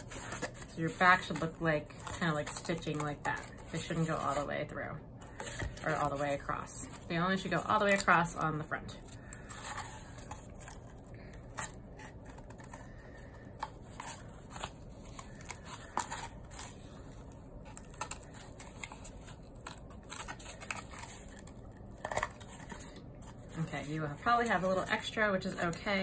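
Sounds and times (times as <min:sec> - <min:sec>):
cardboard rustling: 0:00.0 - 0:04.5, 0:05.2 - 0:26.0.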